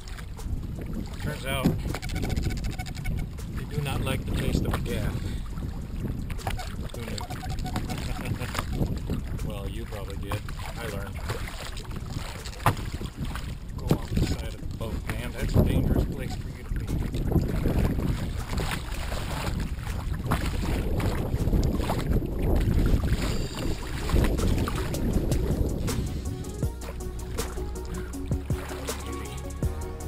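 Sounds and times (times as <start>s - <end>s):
wind buffeting microphone: 0.0s - 28.8s
waves slapping against a hull: 0.0s - 29.8s.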